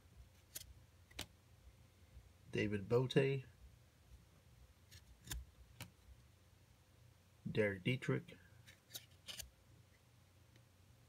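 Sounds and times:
trading card sliding clicks: 8.9 - 9.5.

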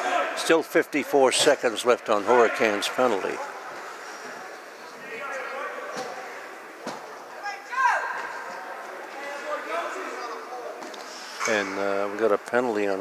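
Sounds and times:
distant echoing voices: 0.0 - 12.3.

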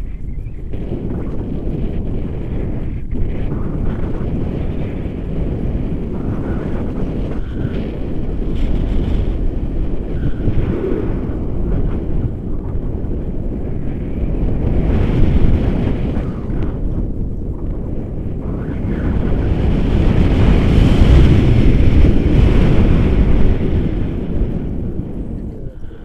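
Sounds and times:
wind rushing over microphone: 0.0 - 26.0.

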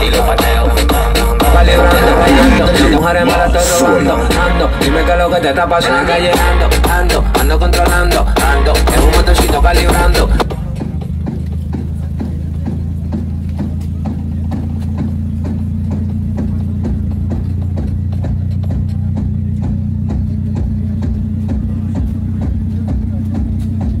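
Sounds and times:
loud music with sung vocal: 0.0 - 13.2.

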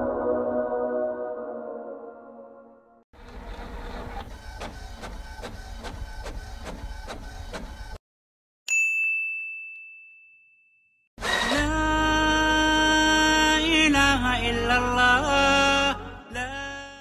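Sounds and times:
bright bell ding: 8.7 - 11.0.

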